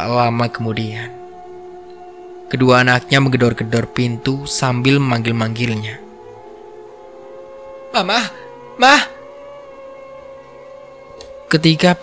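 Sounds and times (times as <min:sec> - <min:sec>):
quiet synth drone: 0:00.0 - 0:12.0.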